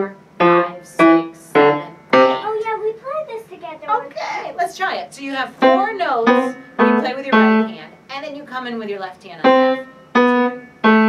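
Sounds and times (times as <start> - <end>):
piano single notes: 0.0 - 2.6, 5.6 - 7.8, 9.4 - 11.0
person speaking: 0.6 - 10.6.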